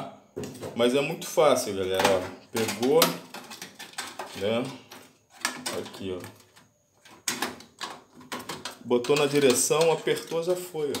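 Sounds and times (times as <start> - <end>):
metal bracket clicks and knocks: 7.1 - 11.0.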